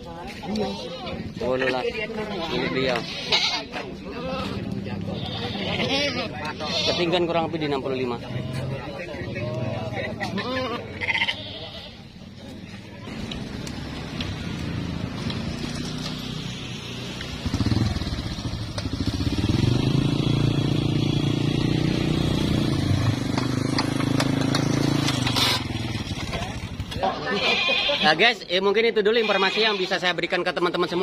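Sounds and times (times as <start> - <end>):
crowd noise: 0.0 - 18.1, 20.0 - 31.0
goats bleating: 0.5 - 3.9, 5.0 - 7.4, 8.2 - 8.8, 10.2 - 12.2, 27.0 - 28.3, 29.1 - 30.2.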